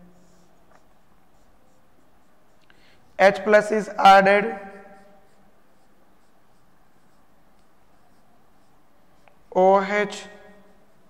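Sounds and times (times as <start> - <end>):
marker squeaking on whiteboard: 0.0 - 11.0.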